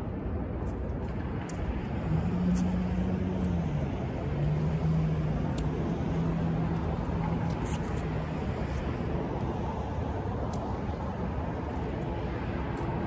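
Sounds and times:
engine drone: 0.0 - 13.0
outdoor noise: 0.0 - 13.0.

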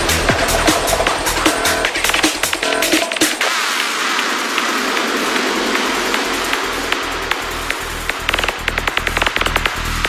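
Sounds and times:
dense hissing noise wash: 0.0 - 10.0.

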